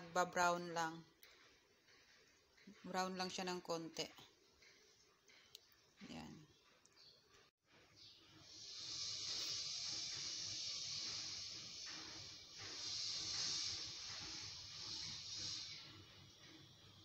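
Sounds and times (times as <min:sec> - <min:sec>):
steady high hiss: 0:08.4 - 0:16.6.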